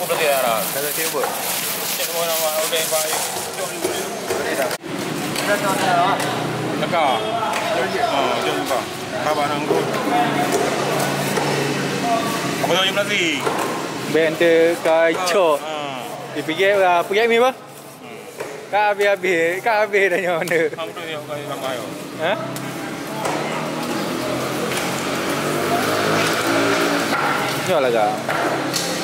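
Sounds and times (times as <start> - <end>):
background voices talking: 0.0 - 29.0.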